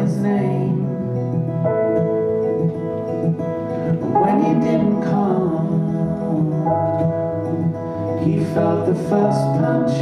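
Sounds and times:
person singing folk song: 0:00.0 - 0:01.2, 0:04.0 - 0:07.4, 0:08.0 - 0:10.0
acoustic guitar playing: 0:00.0 - 0:10.0.

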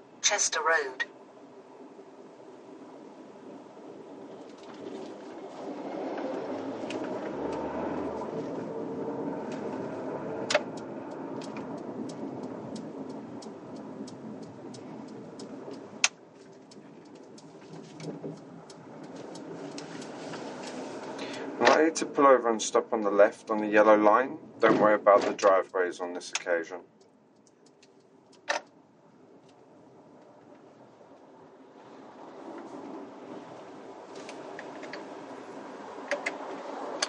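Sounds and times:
car cabin road rumble: 0:02.7 - 0:37.0
regular light ticks: 0:10.5 - 0:21.2, 0:26.3 - 0:28.8.

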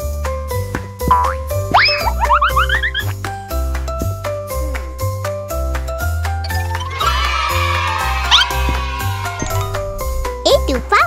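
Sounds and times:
bouncy children's music: 0:00.1 - 0:11.0
cartoon boing: 0:01.1 - 0:03.1.

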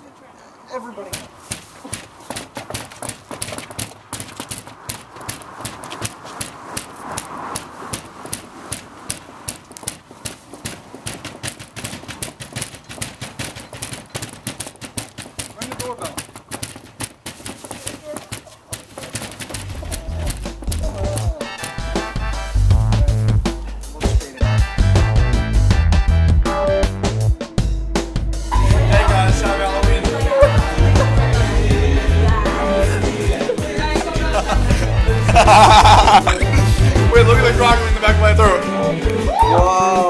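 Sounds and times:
music with heavy bass beat: 0:19.7 - 0:39.8.

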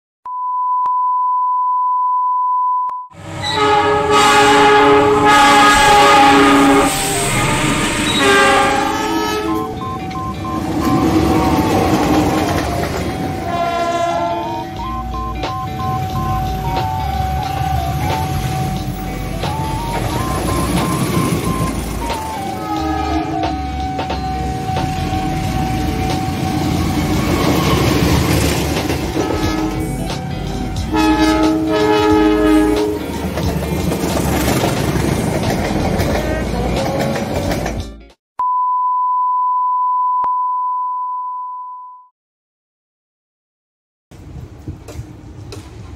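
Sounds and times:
diesel locomotive horns: 0:03.2 - 0:34.6
trains rumbling by: 0:03.2 - 0:38.0, 0:44.1 - 0:45.9.

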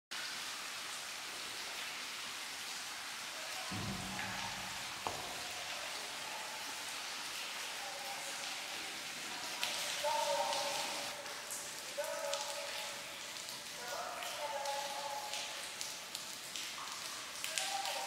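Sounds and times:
water dripping in cave: 0:00.1 - 0:18.0.

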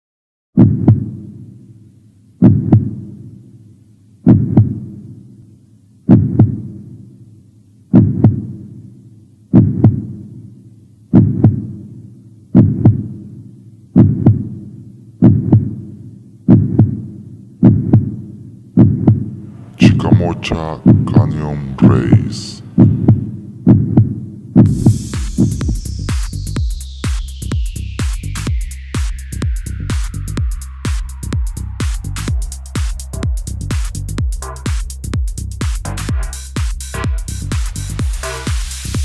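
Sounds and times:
heartbeat double thumps: 0:00.6 - 0:01.1, 0:02.4 - 0:03.0, 0:04.2 - 0:04.9, 0:06.1 - 0:06.7, 0:07.9 - 0:08.6, 0:09.5 - 0:10.2, 0:11.1 - 0:11.8, 0:12.5 - 0:13.1, 0:14.0 - 0:14.5, 0:15.2 - 0:15.8, 0:16.5 - 0:17.0, 0:17.6 - 0:18.2, 0:18.8 - 0:39.0.

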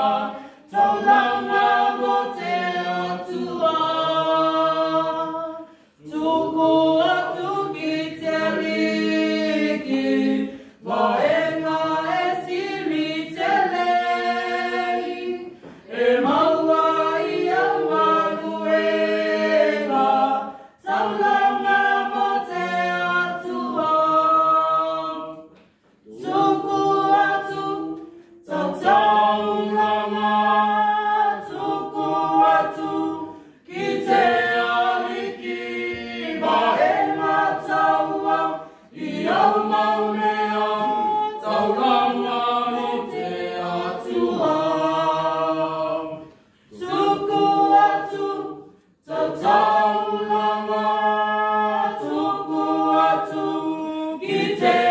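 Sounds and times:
group singing unaccompanied: 0:00.0 - 0:54.9.

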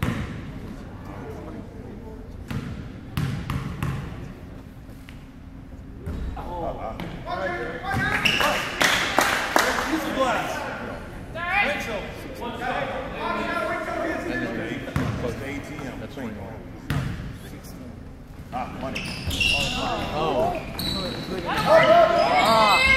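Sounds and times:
people calling out: 0:20.8 - 0:22.9.

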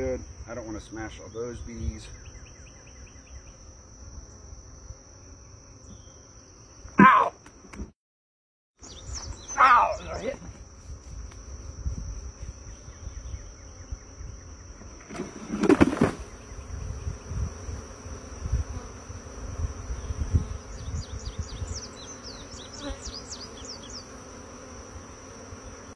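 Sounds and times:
honeybees buzzing: 0:00.0 - 0:07.9, 0:08.8 - 0:25.9.

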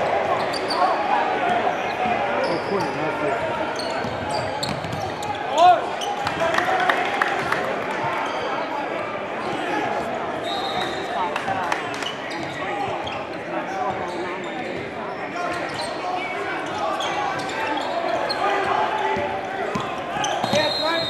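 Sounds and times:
crowd chatter: 0:00.0 - 0:21.0
shoe squeaks: 0:03.7 - 0:06.2, 0:14.0 - 0:21.0.

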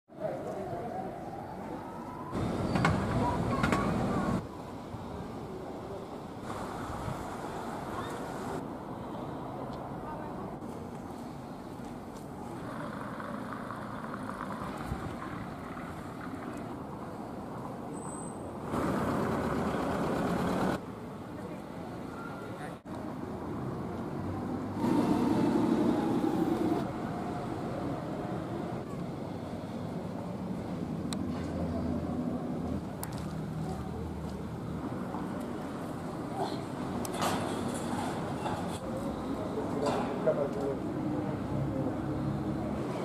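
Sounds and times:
road traffic: 0:00.1 - 0:43.0
people talking: 0:02.9 - 0:04.4, 0:38.8 - 0:43.0.

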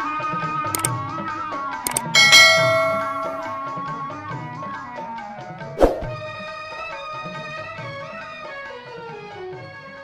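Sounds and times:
button clicks: 0:01.9 - 0:03.6
bright bell strike: 0:01.9 - 0:04.1.

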